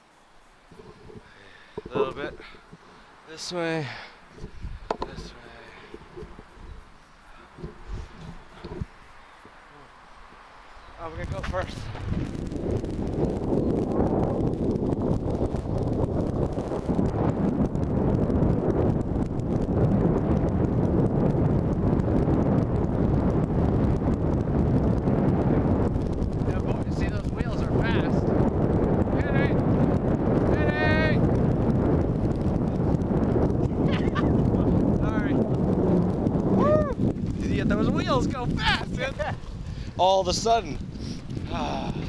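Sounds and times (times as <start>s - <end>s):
skateboard wheels rolling on asphalt: 0.0s - 42.0s
wind buffeting microphone: 0.0s - 42.0s.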